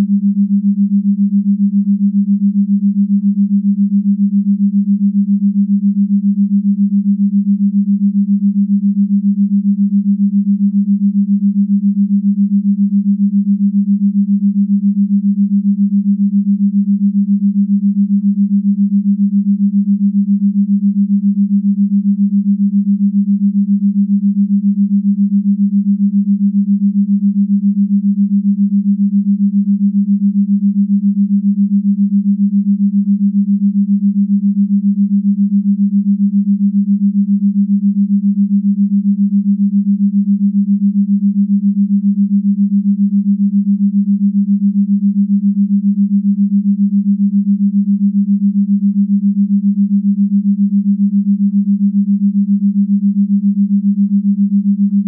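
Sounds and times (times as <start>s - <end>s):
pulsing low tone: 0.0s - 55.0s.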